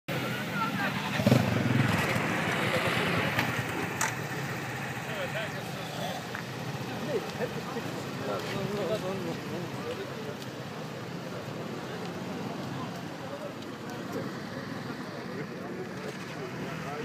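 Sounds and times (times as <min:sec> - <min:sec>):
onlookers' voices: 0:00.1 - 0:17.0
motorcycle engine pulling away: 0:01.0 - 0:04.3.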